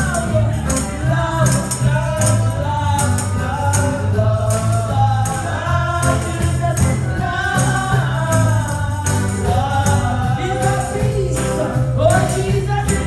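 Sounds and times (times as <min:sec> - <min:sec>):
steady bass backing: 0:00.0 - 0:13.0
tambourine jingling: 0:00.0 - 0:13.0
women singing gospel song: 0:00.0 - 0:13.0.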